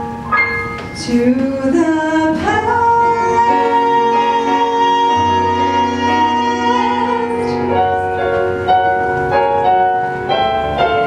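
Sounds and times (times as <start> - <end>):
piano accompaniment: 0.0 - 11.0
woman singing a ballad: 0.9 - 8.2.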